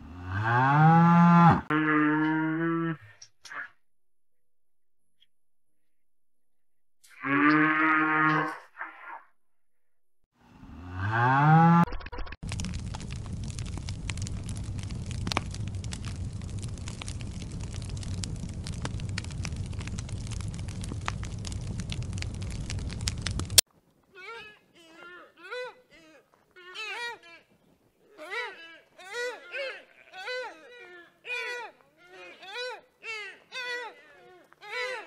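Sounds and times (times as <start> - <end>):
low rumbling noise with crackles: 12.3 - 23.6.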